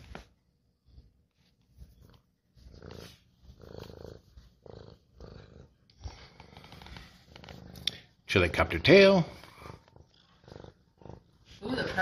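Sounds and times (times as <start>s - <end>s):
cat purring: 0.0s - 12.0s.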